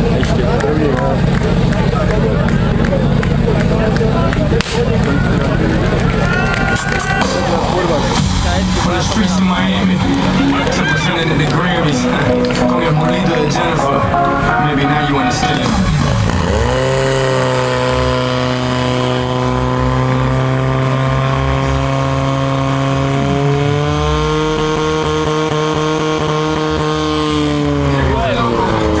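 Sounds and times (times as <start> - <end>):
fire pump engine running: 0.0 - 22.1.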